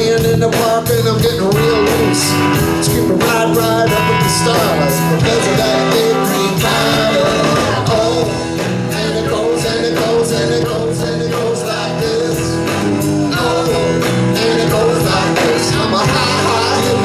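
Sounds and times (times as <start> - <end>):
bass guitar: 0.0 - 17.0
drum kit beat: 0.0 - 17.0
electric guitars: 0.0 - 17.0.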